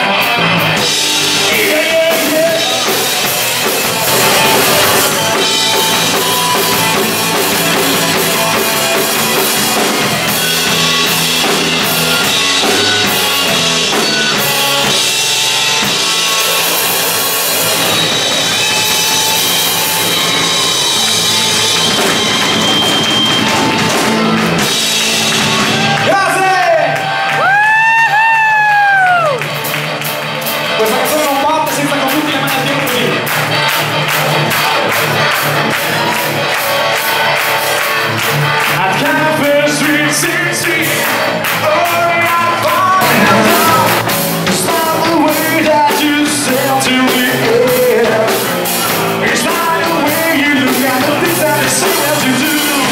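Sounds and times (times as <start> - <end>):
bass guitar: 0.0 - 52.9
drum kit: 0.0 - 52.9
electric guitar: 0.0 - 52.9
person singing: 38.7 - 52.9.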